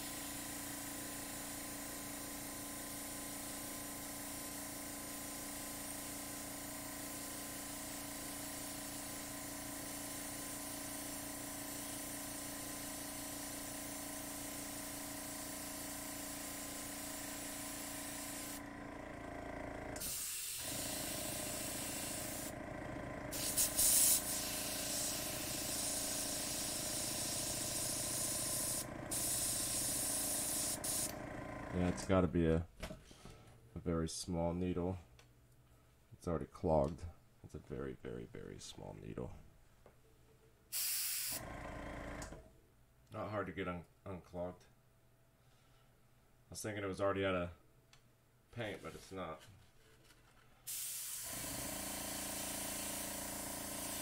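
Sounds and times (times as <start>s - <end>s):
airbrush air hiss: 0.0s - 18.6s, 20.0s - 22.5s, 23.3s - 31.2s, 40.7s - 41.4s, 50.7s - 54.0s
air compressor humming: 0.0s - 32.3s, 40.7s - 42.5s, 50.7s - 54.0s.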